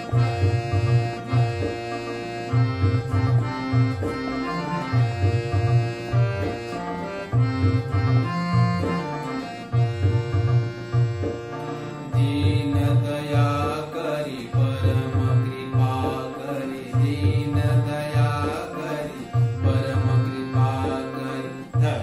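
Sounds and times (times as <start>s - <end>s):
harmonium melody: 0.0s - 22.0s
tabla rhythm: 0.0s - 22.0s
man singing: 12.0s - 22.0s.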